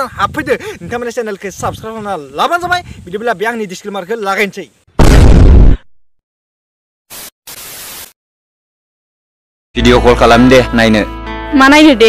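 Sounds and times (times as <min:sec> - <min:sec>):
static hiss bursts: 0:07.1 - 0:08.2.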